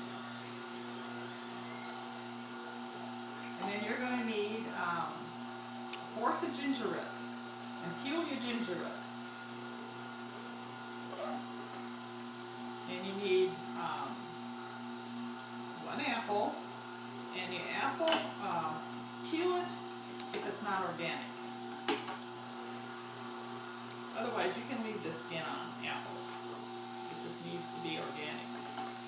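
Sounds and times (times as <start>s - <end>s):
juicer motor humming: 0.0s - 29.0s.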